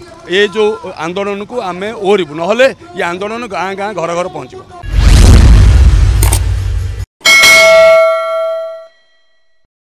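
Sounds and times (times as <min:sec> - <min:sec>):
bell chime ding: 0:07.2 - 0:09.6.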